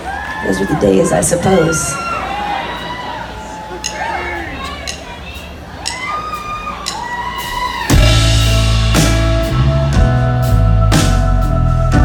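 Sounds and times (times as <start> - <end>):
rock band playing loud: 3.8 - 12.0.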